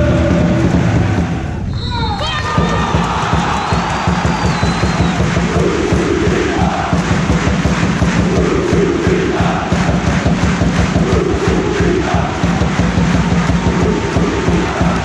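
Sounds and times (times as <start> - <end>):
crowd noise: 0.0 - 15.0
football crowd chanting: 2.6 - 15.0.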